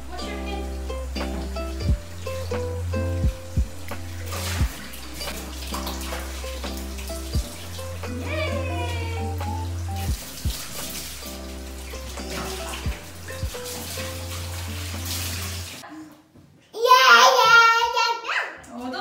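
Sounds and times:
steady low hum: 0.0 - 5.6
soft background music: 0.0 - 15.8
water splashing in bathtub: 0.0 - 15.9
high wavering voice: 8.1 - 9.6.

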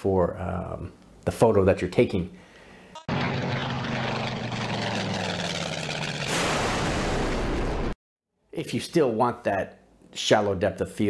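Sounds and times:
low engine-like hum: 3.1 - 6.3
wash of noise: 3.1 - 7.9.

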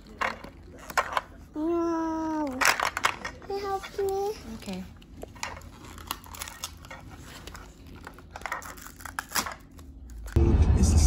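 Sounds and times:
packaging rustling: 4.0 - 10.4.

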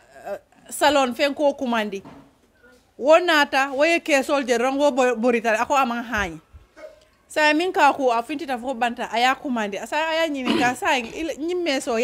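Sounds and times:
woman speaking: 0.2 - 2.1, 3.0 - 6.4, 7.3 - 12.0.

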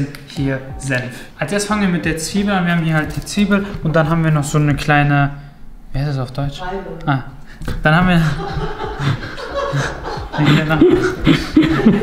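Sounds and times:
man chuckling: 8.2 - 12.0.

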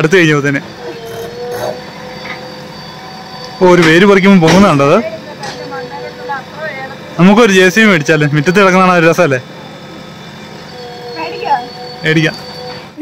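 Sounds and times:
diesel engine running: 0.0 - 13.0.

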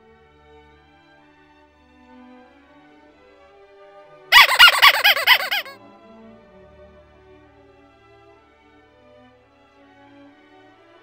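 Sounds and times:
loud warbling call: 4.4 - 5.8.

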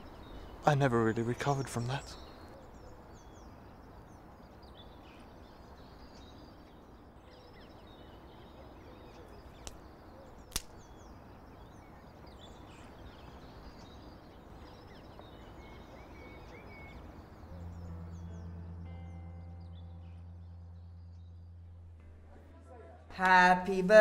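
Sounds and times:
birds chirping: 0.0 - 22.7
sharp click: 10.5 - 10.8
low steady drone: 10.8 - 24.0.

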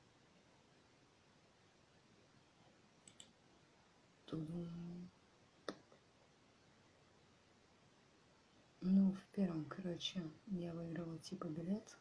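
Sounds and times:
computer mouse clicks: 3.0 - 3.4.

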